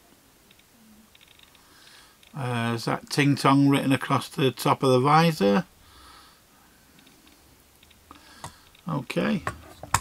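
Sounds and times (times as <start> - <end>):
faint hum: 0.0 - 10.0
faint ticks: 0.4 - 2.4.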